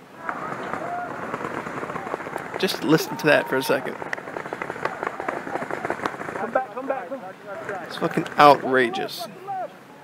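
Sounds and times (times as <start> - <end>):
paintball markers firing rapidly: 0.3 - 3.2, 4.0 - 6.6.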